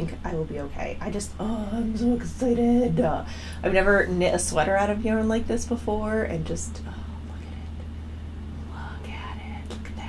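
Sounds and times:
steady low hum: 0:00.0 - 0:10.0
woman whispering: 0:06.7 - 0:08.0, 0:08.6 - 0:10.0.

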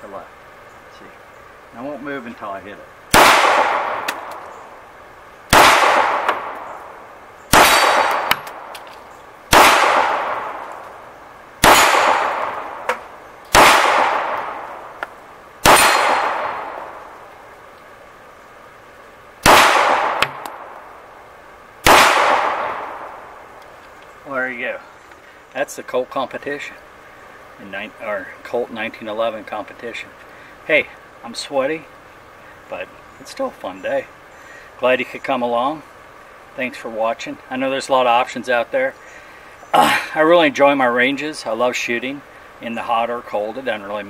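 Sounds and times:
pistol shots with ringing tail: 0:03.1 - 0:04.4, 0:05.5 - 0:08.8, 0:09.5 - 0:10.9, 0:11.6 - 0:15.0, 0:15.6 - 0:17.2, 0:19.4 - 0:20.8, 0:21.8 - 0:23.4.

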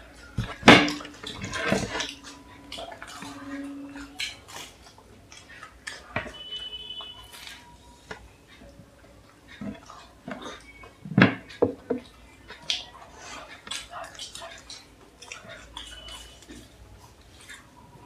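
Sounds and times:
chewing: 0:00.1 - 0:18.0
clay cups and plates clinking: 0:00.4 - 0:04.1.

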